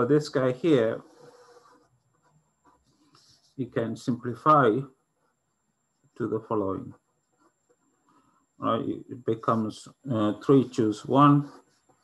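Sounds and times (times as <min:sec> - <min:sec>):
pen scratching on paper: 0:01.0 - 0:03.6.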